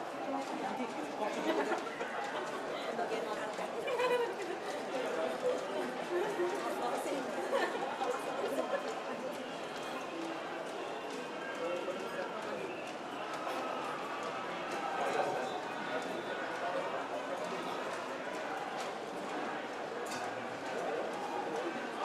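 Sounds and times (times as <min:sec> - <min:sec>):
crowd talking and calling out: 0:00.0 - 0:22.0.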